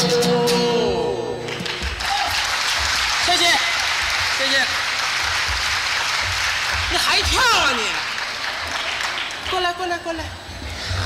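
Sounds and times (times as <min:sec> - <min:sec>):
audience applauding: 0:01.4 - 0:10.1.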